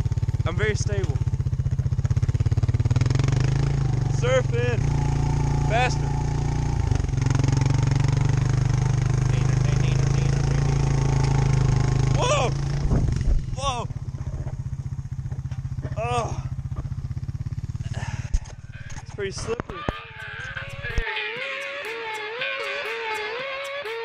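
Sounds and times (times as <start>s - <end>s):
atv engine running: 0.0s - 24.0s.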